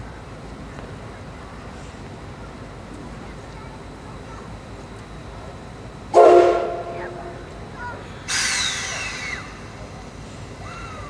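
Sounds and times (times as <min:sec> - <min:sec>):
steam locomotive whistle blast: 0:06.2 - 0:07.3
steam hissing: 0:08.3 - 0:09.6.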